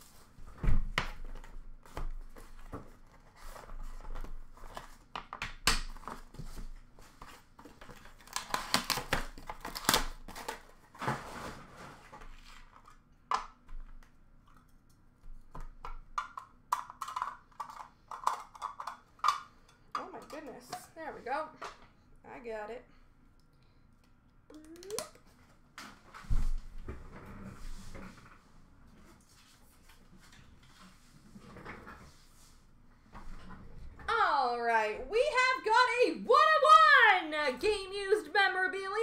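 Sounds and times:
plastic wrap crinkling and tearing: 7.7s - 11.6s.

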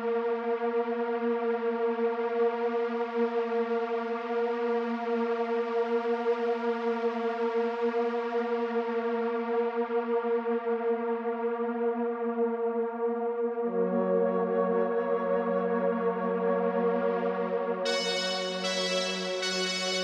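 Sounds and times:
low synthesizer drone: 17.3s - 20.0s.

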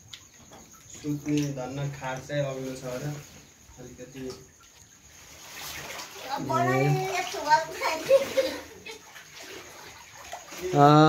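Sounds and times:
floodwater sloshing: 0.0s - 11.0s.

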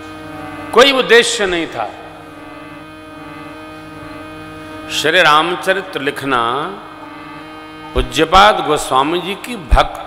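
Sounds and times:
soft musical drone: 0.0s - 10.0s.

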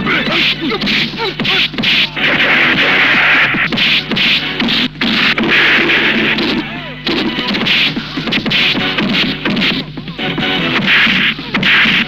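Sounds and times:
background music: 0.0s - 12.0s
punch and hit impacts: 0.8s - 9.9s, 10.8s - 12.0s.

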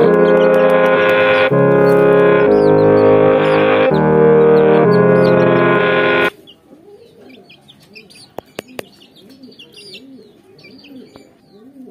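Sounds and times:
loud background music: 0.0s - 6.3s
chicks peeping: 0.0s - 11.3s.

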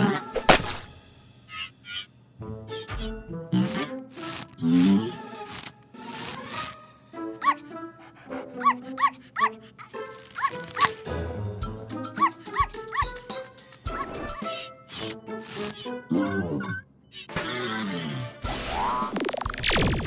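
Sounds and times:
cartoon music: 6.3s - 20.0s
cartoon puppy yipping: 7.4s - 7.7s, 8.6s - 11.0s, 12.1s - 13.2s, 13.9s - 15.1s.

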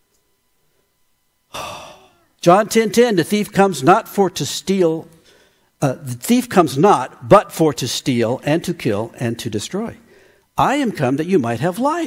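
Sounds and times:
man sighing into microphone: 1.5s - 2.3s.

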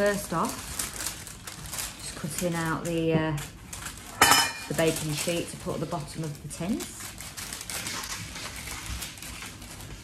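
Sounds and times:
scissors cutting baking paper: 0.0s - 10.0s.

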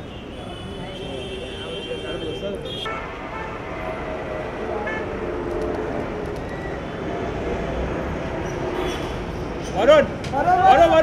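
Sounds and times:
distant chatter: 0.0s - 2.9s.

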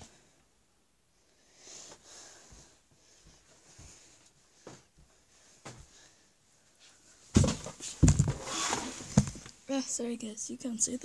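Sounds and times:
loud scuffling: 7.3s - 9.5s.

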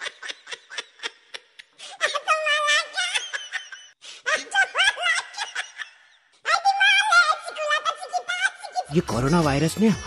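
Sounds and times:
high-pitched giggling laughter: 0.0s - 8.9s.

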